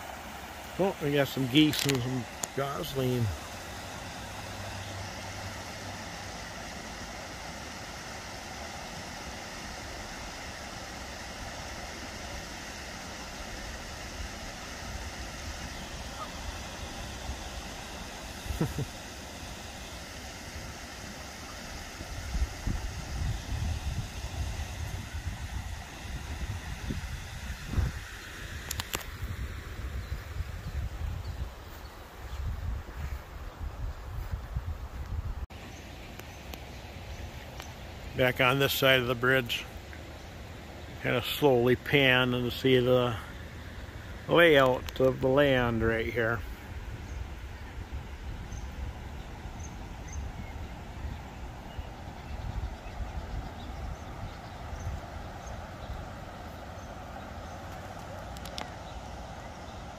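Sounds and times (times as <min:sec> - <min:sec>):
river water rushing over rocks: 0:00.0 - 0:22.8.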